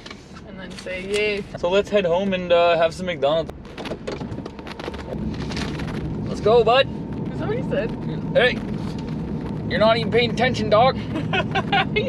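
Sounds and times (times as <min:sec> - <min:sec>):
car cabin road rumble: 0:00.0 - 0:12.0.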